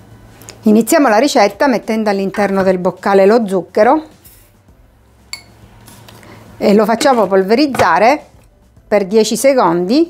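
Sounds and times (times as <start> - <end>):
glass clink: 5.3 - 5.6.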